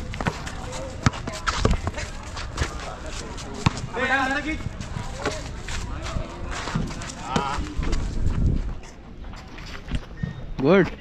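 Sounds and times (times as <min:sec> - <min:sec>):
running footsteps on hard court: 0:00.0 - 0:08.8.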